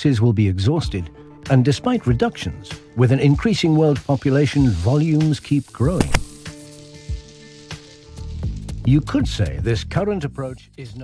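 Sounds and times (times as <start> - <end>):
faint hiss: 3.4 - 9.0
sharp clicks: 5.9 - 6.4.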